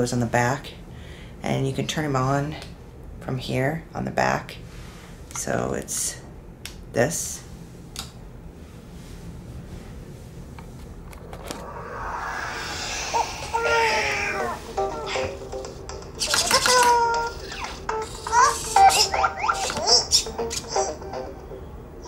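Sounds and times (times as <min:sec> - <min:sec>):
rising electronic whoosh: 0:11.2 - 0:15.2.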